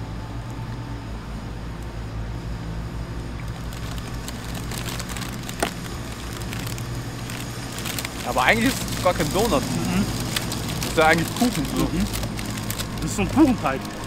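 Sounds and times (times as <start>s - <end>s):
low hum of city traffic: 0.0s - 14.0s
plastic packaging crinkling: 3.4s - 14.0s.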